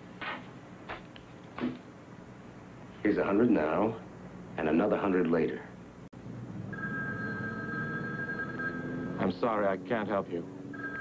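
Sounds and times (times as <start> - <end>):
telephone ringing: 6.7 - 9.2, 10.7 - 11.0.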